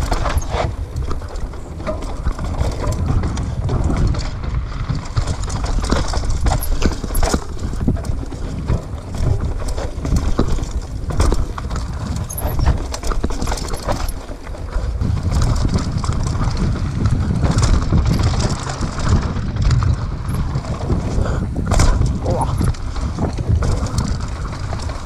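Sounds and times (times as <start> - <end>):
bike clattering over rocks: 0.0 - 25.0
bike tyres on dirt and stone: 0.0 - 25.0
wind rumble on microphone: 0.0 - 25.0.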